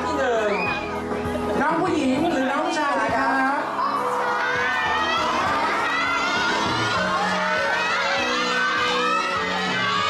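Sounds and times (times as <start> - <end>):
audience shouting and cheering: 0.3 - 1.2, 3.4 - 10.0.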